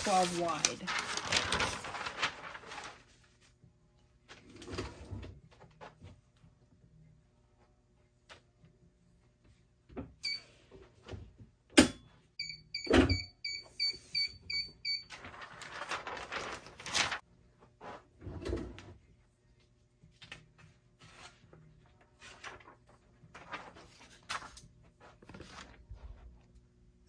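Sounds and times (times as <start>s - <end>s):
paper rustling: 0.0s - 3.6s, 15.1s - 17.2s, 20.0s - 26.4s.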